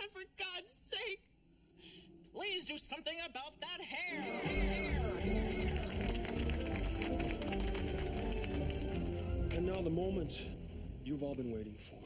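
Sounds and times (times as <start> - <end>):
background music: 4.1 - 12.0.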